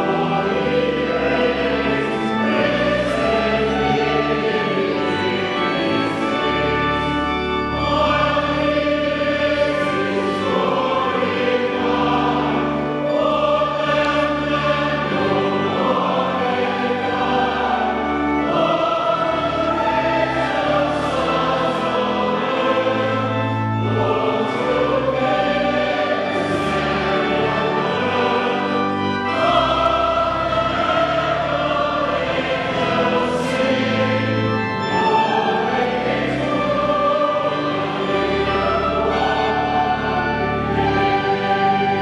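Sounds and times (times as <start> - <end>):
choir singing a hymn: 0.0 - 42.0
clergy singing along: 0.0 - 42.0
organ bass notes: 0.0 - 42.0.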